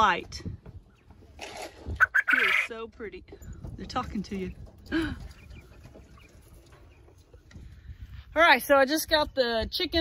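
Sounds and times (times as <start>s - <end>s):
quail chirping: 2.0s - 2.8s, 5.3s - 7.5s.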